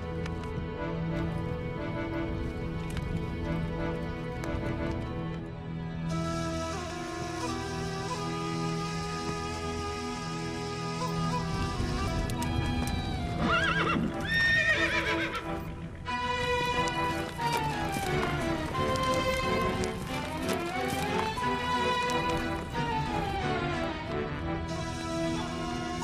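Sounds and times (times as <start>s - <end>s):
horses galloping: 0.0s - 5.5s, 6.1s - 26.0s
dramatic soundtrack music: 0.0s - 26.0s
horse neighing: 13.4s - 15.6s.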